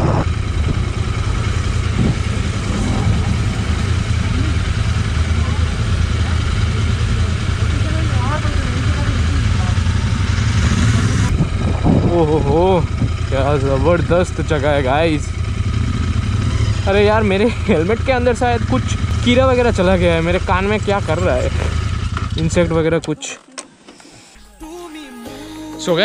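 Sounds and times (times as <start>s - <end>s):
motorcycle engines idling: 0.0s - 23.1s.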